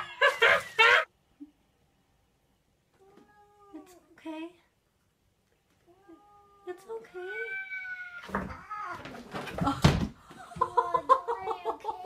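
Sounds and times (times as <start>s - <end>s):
cats yowling: 7.3s - 9.2s.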